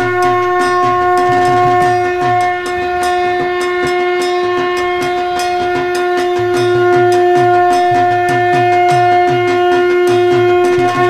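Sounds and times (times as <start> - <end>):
long held horn note: 0.0 - 11.0
quick drum beat: 0.0 - 11.0.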